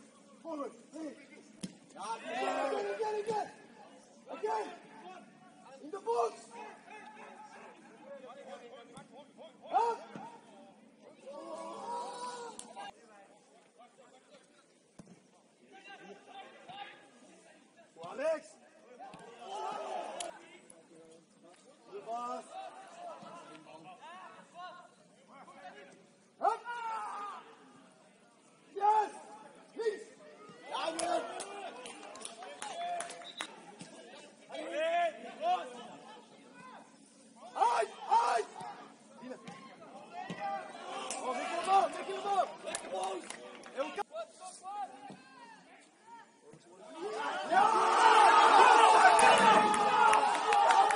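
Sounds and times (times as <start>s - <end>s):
footballers shouting: 19.2s - 20.3s, 39.6s - 43.2s, 46.8s - 50.9s
people shouting and calling: 46.8s - 50.9s.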